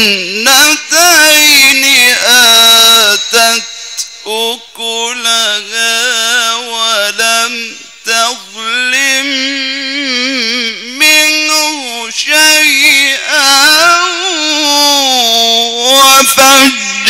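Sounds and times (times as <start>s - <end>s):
man chanting melodically: 0.0s - 17.0s.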